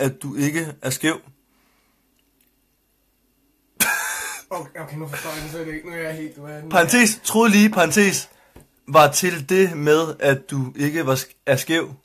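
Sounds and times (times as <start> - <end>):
man's cough-like vocal burst: 3.8 - 4.5.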